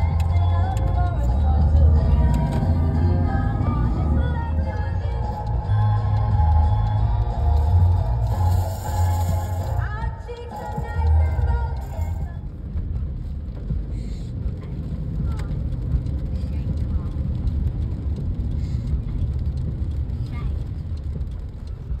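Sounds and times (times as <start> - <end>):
car cabin low rumble: 0.0 - 22.0.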